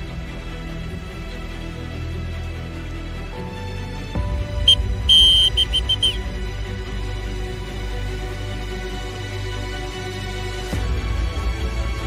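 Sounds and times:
background music: 0.0 - 12.0
high whistle blasts: 4.7 - 6.2.

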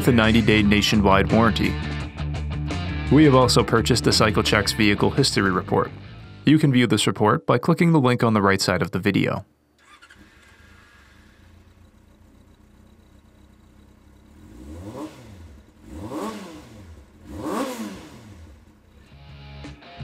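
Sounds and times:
motorcycle engine revving: 9.8 - 19.5.

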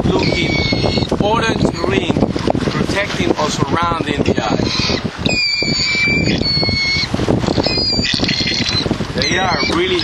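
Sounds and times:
gull calling in whistled notes: 0.2 - 1.1, 4.6 - 10.0.

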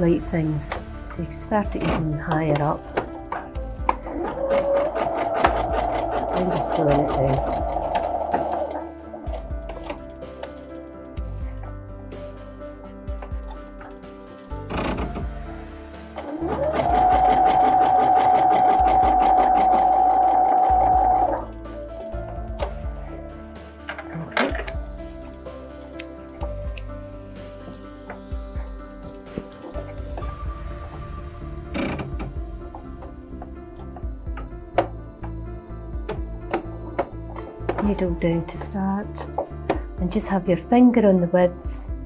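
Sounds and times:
sewing machine whirring: 4.2 - 8.8, 16.2 - 21.5.

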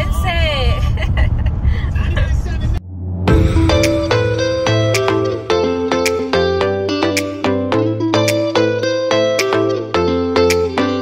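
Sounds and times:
car road and engine rumble: 0.0 - 6.3.

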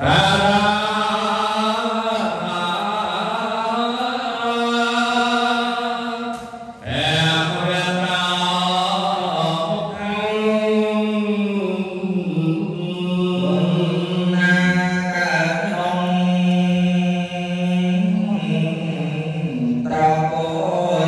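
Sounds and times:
man chanting over a microphone: 0.0 - 21.0.

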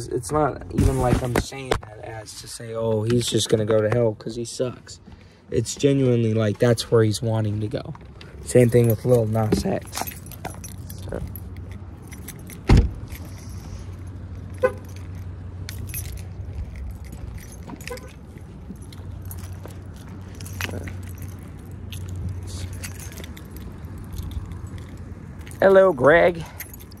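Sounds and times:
keys jingling: 7.8 - 27.0.

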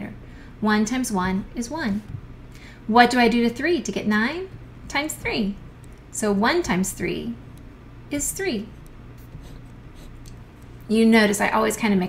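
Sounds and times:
woman speaking: 0.0 - 2.2, 2.9 - 7.4, 8.1 - 8.8, 10.9 - 12.0
steady low hum: 0.0 - 12.0
stylus scratching pen tablet: 8.1 - 10.3.

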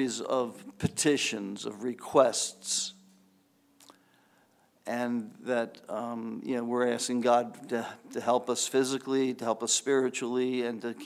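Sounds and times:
man speaking: 0.0 - 3.1, 4.9 - 11.0.

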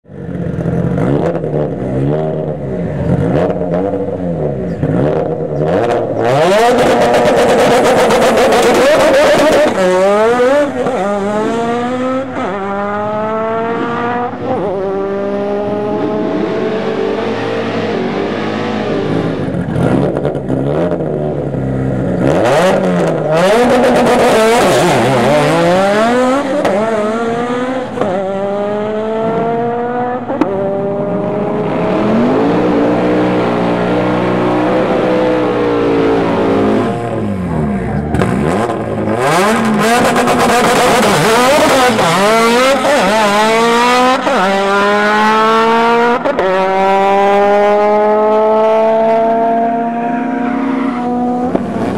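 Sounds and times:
turbocharged car accelerating hard: 0.2 - 51.9.

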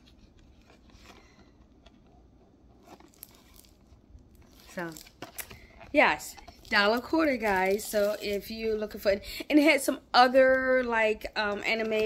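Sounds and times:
plastic package crinkling: 2.8 - 9.0.

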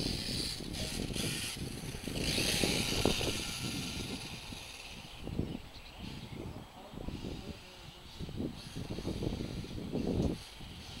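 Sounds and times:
rc car motor whirring: 0.0 - 6.3, 7.1 - 11.0.

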